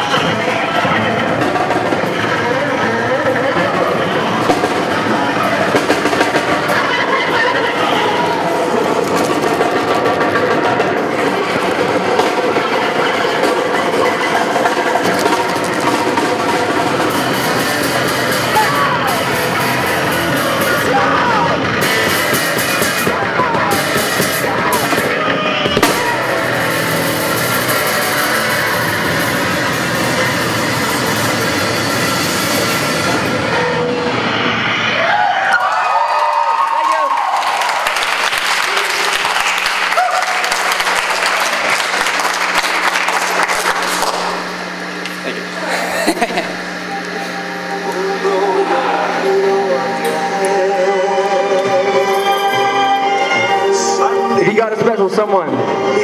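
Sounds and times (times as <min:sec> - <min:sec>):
live rock band playing: 0:00.0 - 0:35.0
wavering guitar noise: 0:00.0 - 0:56.0.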